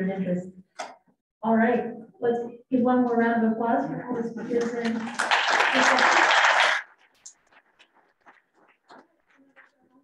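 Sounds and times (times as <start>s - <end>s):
audience applauding: 4.8s - 7.4s.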